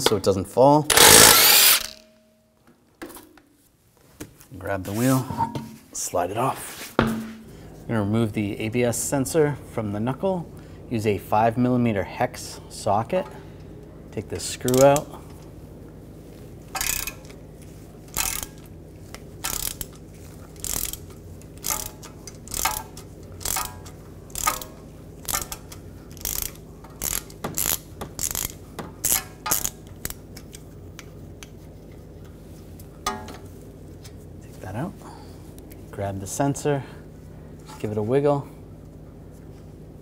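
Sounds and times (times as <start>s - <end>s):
ratchet clicking: 0.9s - 2.0s, 14.7s - 15.0s, 16.8s - 17.3s, 18.1s - 18.7s, 19.4s - 20.0s, 20.6s - 30.6s.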